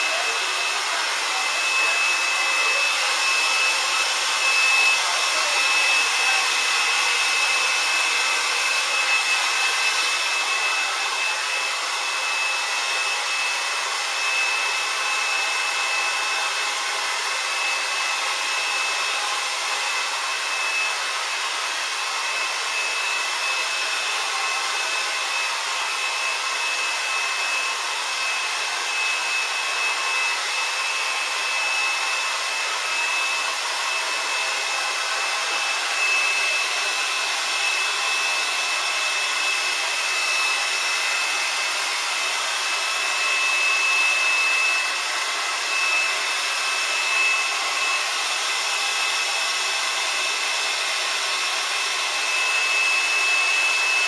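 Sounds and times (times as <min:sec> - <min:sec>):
hair dryer blowing: 0:00.0 - 0:54.0.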